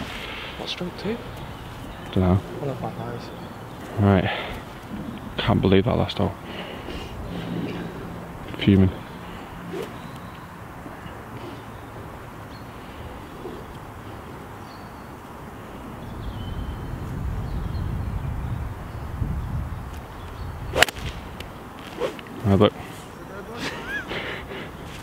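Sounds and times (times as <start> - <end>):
golf club striking ball: 20.7 - 22.3.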